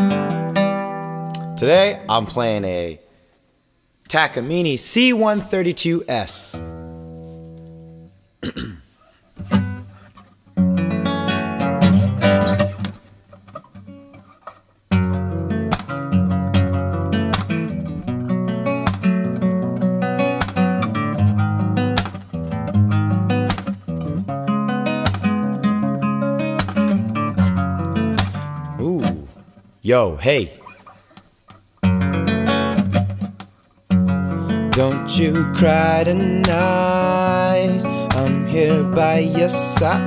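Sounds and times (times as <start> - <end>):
classical guitar strumming: 0.0 - 2.2, 6.5 - 8.1, 9.4 - 29.7, 31.6 - 40.0.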